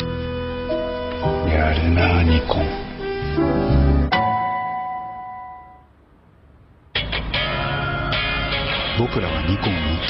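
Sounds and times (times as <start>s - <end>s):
commercial music: 0.0s - 5.9s
bell-like chime ringing: 4.1s - 5.9s.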